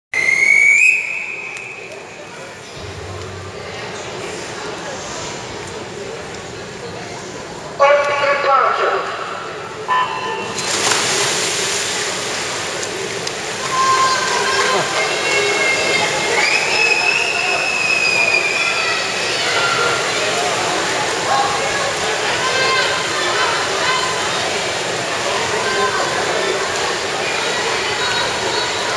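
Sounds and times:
high whistle-like signal tone: 0.1 - 2.0, 13.6 - 14.8
spectators: 0.1 - 28.9
short lower note: 2.8 - 5.6
swimmers splashing: 9.0 - 28.9
long shrill high note: 13.6 - 14.8.

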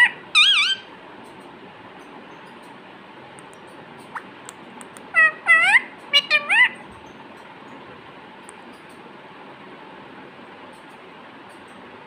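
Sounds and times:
parakeet calls rising in pitch: 0.0 - 0.9, 5.1 - 6.8.

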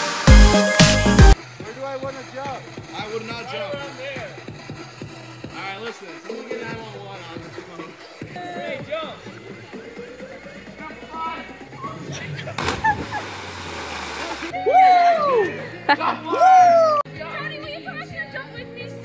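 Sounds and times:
background music: 0.0 - 19.0
spray pattering down: 9.0 - 14.5
big splash into water: 12.5 - 14.5
people yelling: 14.5 - 17.1.

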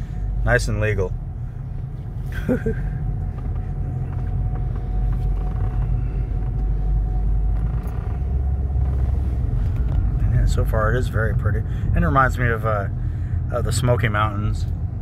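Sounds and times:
car road and engine rumble: 0.0 - 15.0
person laughing: 2.3 - 3.0.

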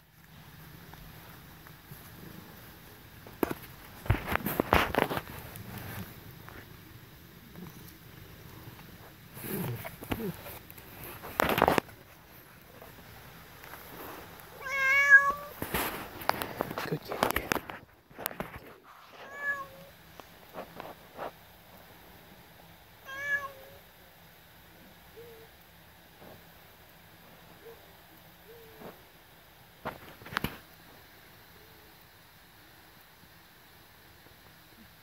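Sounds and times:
cat meowing: 14.5 - 15.6, 19.1 - 19.9, 23.0 - 23.8.

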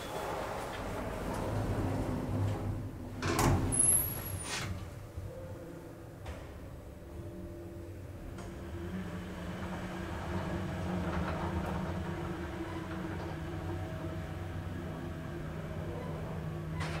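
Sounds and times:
elevator car hum and rumble: 0.0 - 17.0.

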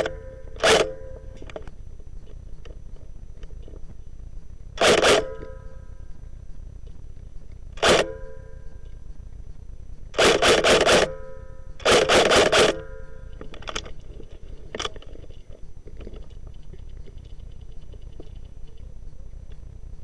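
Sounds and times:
airsoft rifle firing: 0.0 - 1.1, 4.8 - 5.6, 7.8 - 8.2, 10.1 - 11.2, 11.8 - 13.8.

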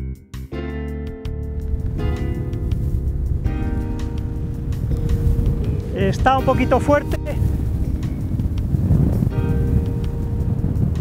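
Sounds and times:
music of sustained chords: 0.6 - 11.0
wind on microphone: 1.3 - 11.0.

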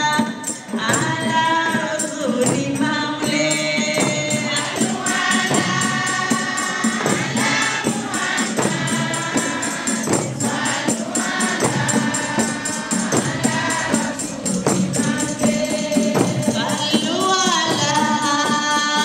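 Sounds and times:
rattling percussion beat: 0.0 - 19.0
women's choir singing in harmony: 0.0 - 19.0.

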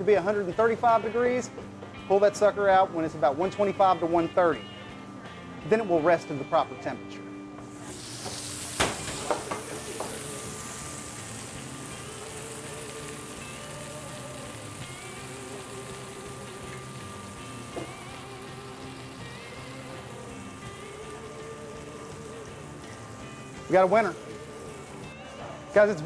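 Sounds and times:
meat sizzling in a skillet: 7.7 - 26.0.

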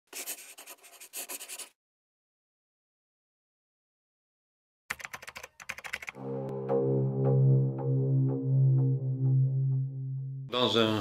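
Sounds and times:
pen scratching on paper: 0.1 - 1.8.

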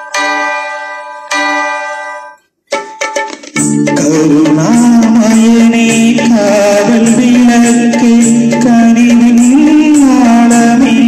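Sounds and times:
bell-like chords ringing: 0.0 - 3.0.

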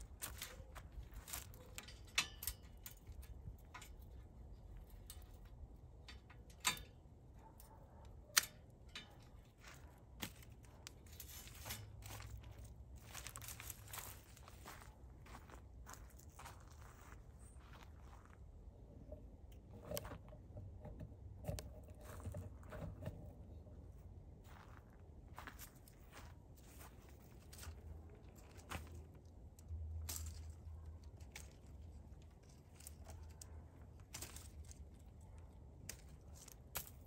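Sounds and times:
dry stems crackling rustles: 0.0 - 19.1, 24.4 - 37.0.

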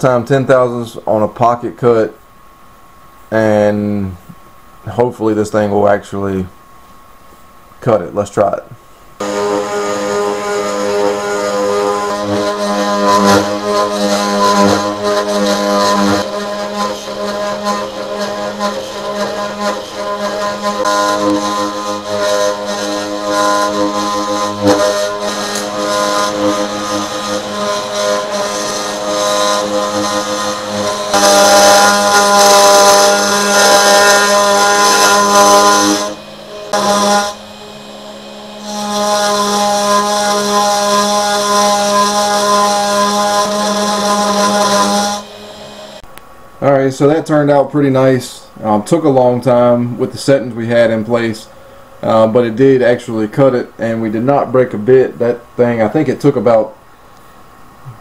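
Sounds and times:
bit milling aluminum: 9.2 - 46.0
cnc router spindle whine: 9.2 - 46.1.

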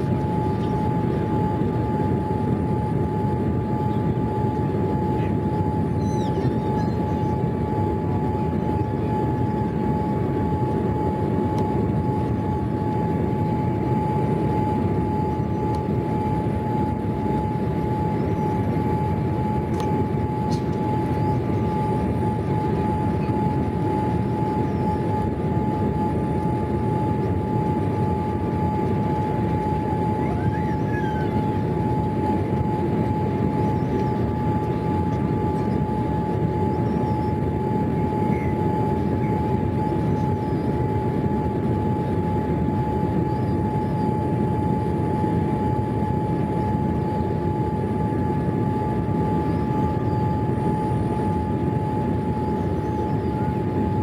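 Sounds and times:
engine and airflow rush: 0.0 - 54.0
steady high hum: 0.0 - 54.0.

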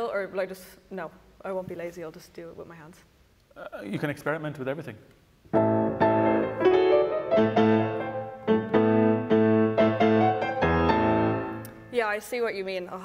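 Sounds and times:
piano playing classical chords: 5.5 - 12.0.

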